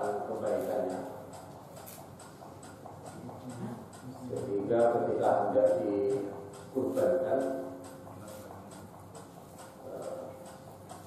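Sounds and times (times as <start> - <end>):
faint regular ticking: 0.0 - 11.0.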